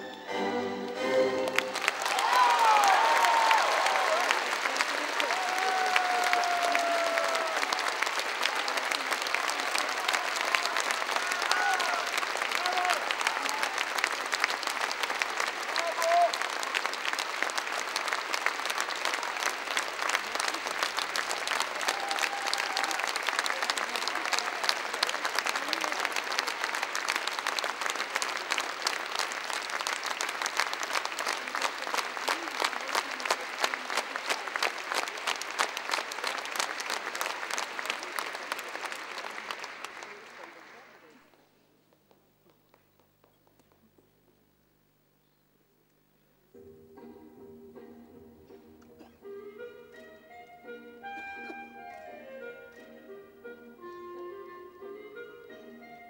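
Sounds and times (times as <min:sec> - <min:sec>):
audience applauding: 0:00.0 - 0:41.6
people shouting: 0:11.2 - 0:13.0.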